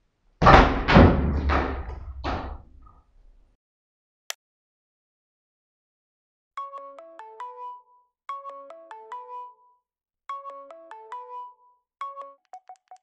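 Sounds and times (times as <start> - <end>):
bell-like synth ringtone: 6.6 - 12.5.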